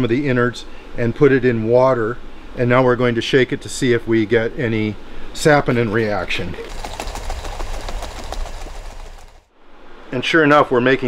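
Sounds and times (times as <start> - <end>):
water sloshing in a shaken jar: 6.4 - 9.5.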